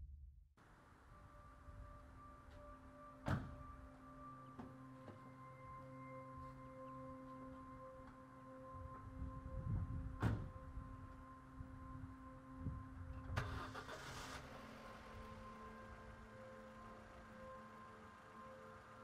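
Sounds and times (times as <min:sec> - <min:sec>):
soft musical drone: 0:00.6 - 0:19.0
car door shutting: 0:03.2 - 0:03.7, 0:10.2 - 0:10.6
car engine starting: 0:13.0 - 0:19.0.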